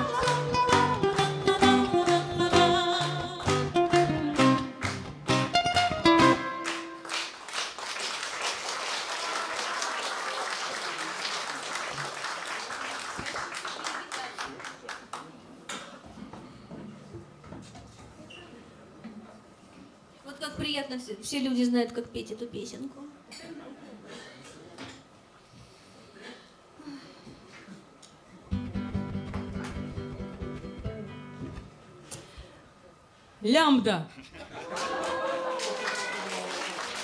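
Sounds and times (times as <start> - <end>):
acoustic guitar: 0.0 - 7.2, 28.5 - 32.5
ukulele: 0.0 - 7.2, 28.5 - 31.8
audience applause: 6.6 - 15.3, 34.6 - 37.0.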